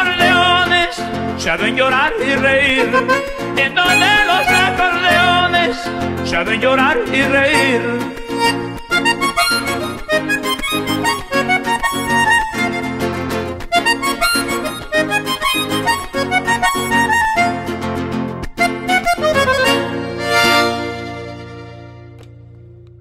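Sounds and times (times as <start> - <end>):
button accordion playing: 2.6 - 6.0, 7.5 - 17.9, 18.5 - 22.2.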